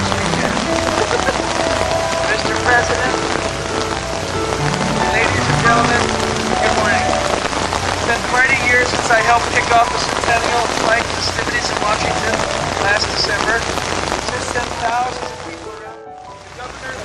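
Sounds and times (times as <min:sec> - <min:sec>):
steady rain falling: 0:00.0 - 0:17.0.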